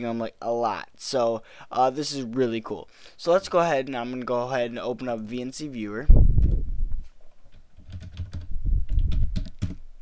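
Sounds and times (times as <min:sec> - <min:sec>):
keyboard keystrokes: 0:07.8 - 0:09.8.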